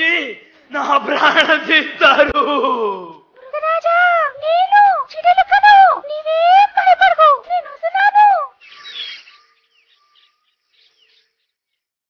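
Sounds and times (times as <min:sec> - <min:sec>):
high-pitched cartoon mouse voice: 0:03.4 - 0:08.6.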